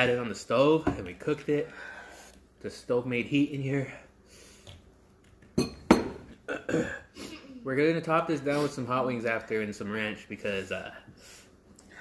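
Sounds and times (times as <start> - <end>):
man clearing throat and coughing: 6.4 - 7.4.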